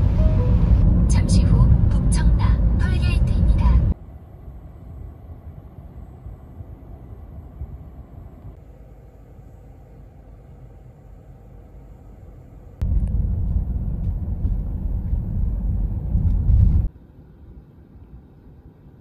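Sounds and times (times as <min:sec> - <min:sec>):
car driving rumble from inside: 0:00.0 - 0:04.0, 0:12.8 - 0:16.9.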